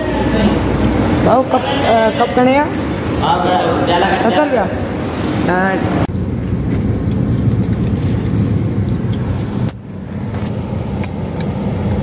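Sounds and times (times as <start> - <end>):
low rumble of road vehicles: 0.0 - 12.0.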